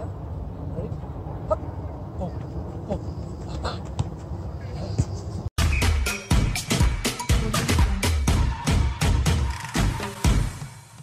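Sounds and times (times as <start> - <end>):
soccer ball kicked on grass: 3.4 - 5.2.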